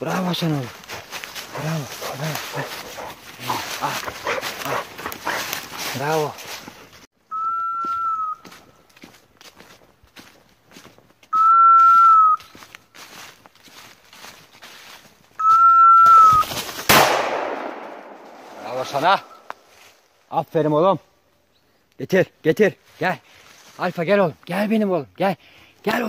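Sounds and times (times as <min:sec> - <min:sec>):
man speaking: 0:00.0 - 0:04.9, 0:05.8 - 0:06.5, 0:18.5 - 0:19.4, 0:22.0 - 0:23.2, 0:23.8 - 0:26.0
dog whistle blast: 0:07.3 - 0:08.4, 0:11.3 - 0:12.4, 0:15.4 - 0:16.5
sharp bang with echo: 0:16.9 - 0:18.6.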